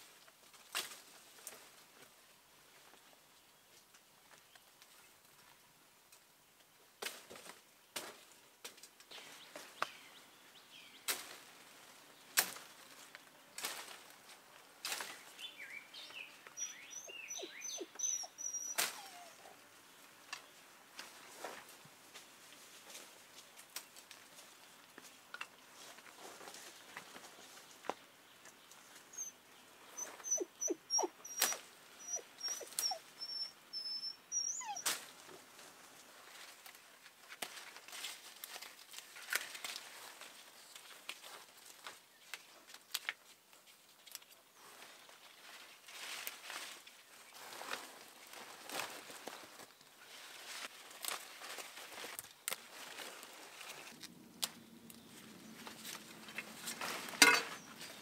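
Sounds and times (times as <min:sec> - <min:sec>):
brush crackling and twigs snapping: 0:00.1 - 0:02.1, 0:07.0 - 0:10.1, 0:11.0 - 0:16.7, 0:20.3 - 0:29.0, 0:34.8 - 0:58.0.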